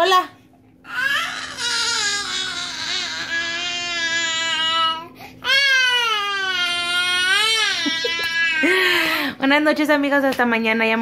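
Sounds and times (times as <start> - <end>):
toddler crying: 0.9 - 8.8.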